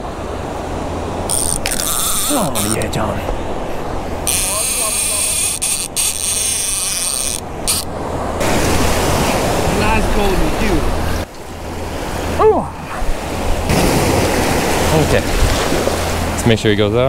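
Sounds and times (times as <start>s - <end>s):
fishing reel whirring: 1.3s - 2.9s, 4.2s - 7.9s
wind buffeting microphone: 7.4s - 16.9s
surf washing over beach: 7.4s - 17.0s.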